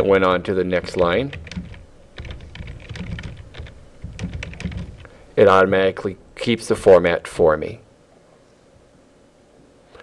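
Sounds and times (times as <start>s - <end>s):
keyboard typing: 0.8s - 5.2s.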